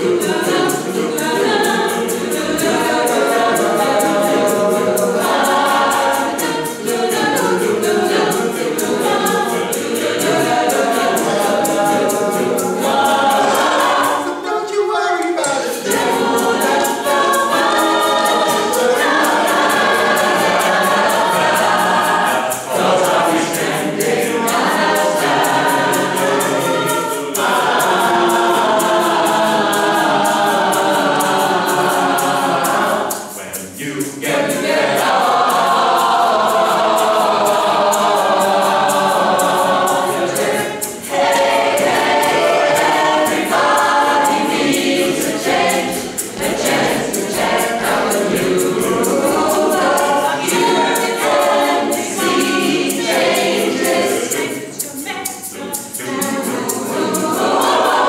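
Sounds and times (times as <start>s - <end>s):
mixed choir singing in parts: 0.0s - 58.0s.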